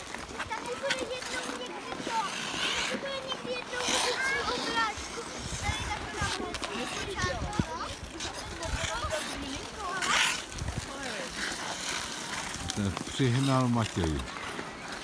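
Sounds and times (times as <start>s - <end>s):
ice skate blades scraping: 0.0s - 15.0s
pram wheels rolling on ice: 0.0s - 15.0s.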